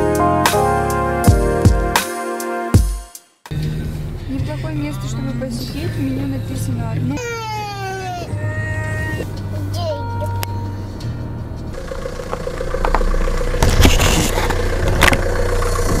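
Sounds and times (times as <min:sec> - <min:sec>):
car running close by: 0:11.7 - 0:16.0.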